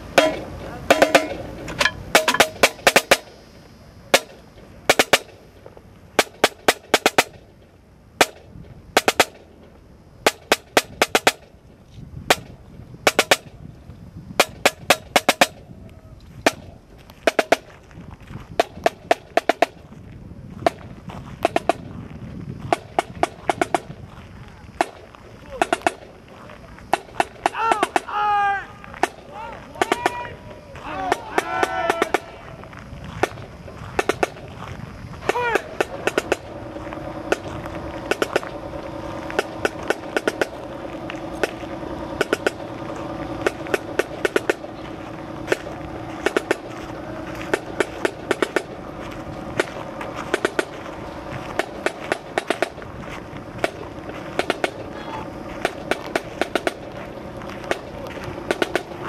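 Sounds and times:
marching drum beating: 0:00.1 - 0:03.3, 0:04.9 - 0:05.3, 0:17.2 - 0:17.7, 0:35.3 - 0:52.8, 0:53.6 - 0:59.0
snare drum strikes: 0:00.2 - 0:03.2
person shouting: 0:27.5 - 0:32.4, 0:35.2 - 0:35.8, 0:54.9 - 0:55.3.

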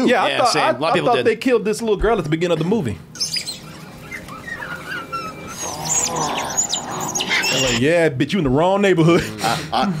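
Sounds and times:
small dinosaurs chirping and squeaking: 0:03.1 - 0:07.8.

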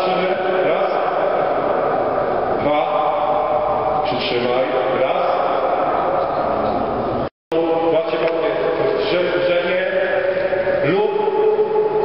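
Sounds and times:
indistinct man's voice: 0:00.0 - 0:06.6, 0:07.5 - 0:12.0.

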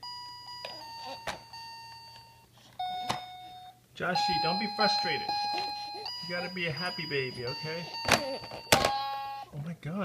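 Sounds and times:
toy beeping tones: 0:00.0 - 0:09.6.

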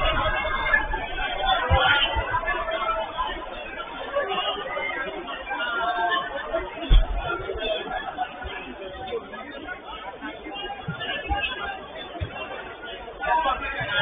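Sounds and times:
players calling out and chattering: 0:00.0 - 0:14.0.

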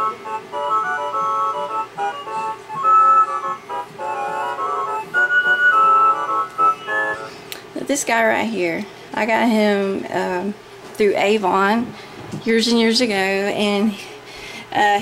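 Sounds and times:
electronic beeping melody: 0:00.0 - 0:07.3.

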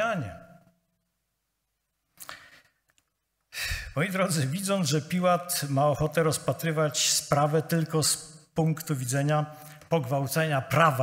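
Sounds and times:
man breathing into microphone: 0:03.5 - 0:04.0.

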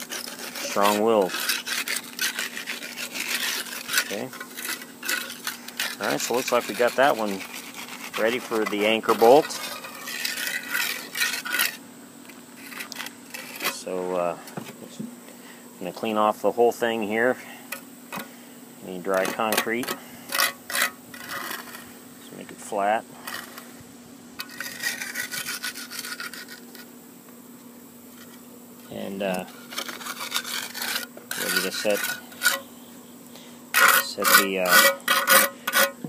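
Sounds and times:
trowel scraping wet concrete: 0:00.0 - 0:11.8, 0:12.6 - 0:14.4, 0:18.9 - 0:23.7, 0:24.4 - 0:26.9, 0:28.2 - 0:32.7, 0:33.7 - 0:36.0.

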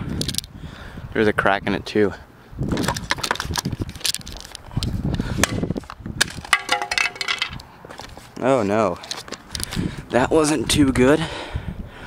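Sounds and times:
calculator clacking on asphalt: 0:06.2 - 0:07.7.

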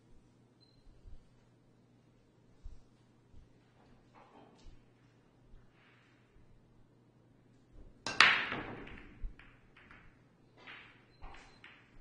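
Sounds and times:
pool balls clattering: 0:08.0 - 0:12.0
pool balls cracking together: 0:08.0 - 0:12.0.

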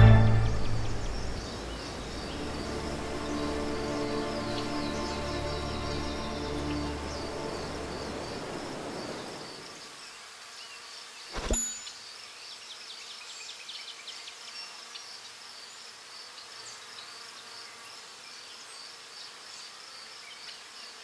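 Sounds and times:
single sharp hit: 0:11.4 - 0:11.9
short chirps: 0:11.4 - 0:12.0.

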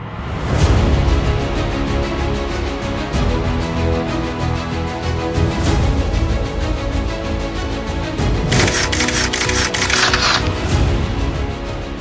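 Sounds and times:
camera shutter clicks: 0:08.5 - 0:10.7.

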